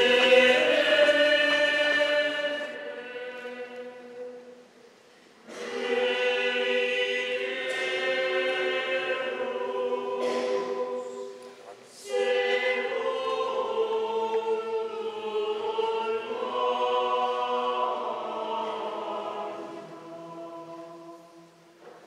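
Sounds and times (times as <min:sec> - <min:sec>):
mixed choir singing unaccompanied: 0:00.0 - 0:04.7, 0:05.4 - 0:21.8.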